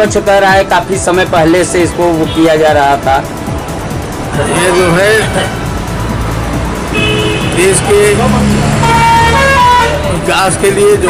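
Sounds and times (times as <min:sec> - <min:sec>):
motor vehicle running: 0:00.0 - 0:11.0.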